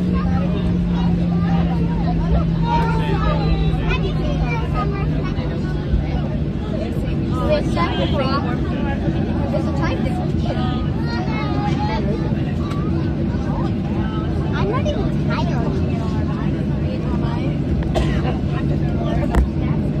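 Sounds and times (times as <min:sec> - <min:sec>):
jet engines droning: 0:00.0 - 0:20.0
passengers talking: 0:00.0 - 0:20.0.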